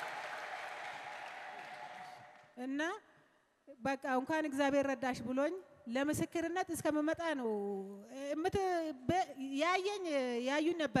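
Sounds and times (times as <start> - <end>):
congregation applauding: 0.0 - 2.6.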